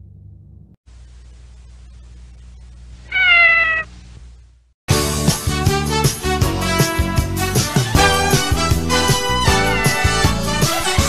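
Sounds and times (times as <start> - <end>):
faint low hum: 0.0 - 4.7
kitten meowing: 3.1 - 3.9.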